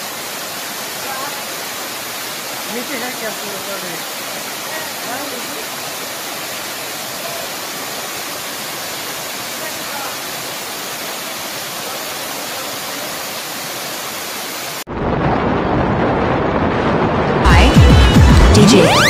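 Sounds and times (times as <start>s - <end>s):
waterfall rushing: 0.0s - 14.9s.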